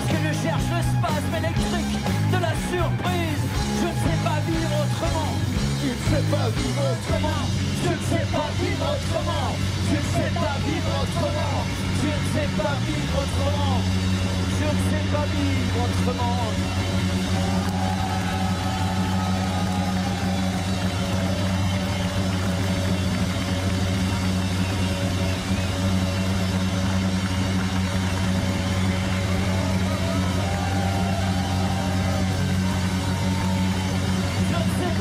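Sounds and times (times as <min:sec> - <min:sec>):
live rock band playing: 0:00.0 - 0:35.0
low drone: 0:05.2 - 0:35.0.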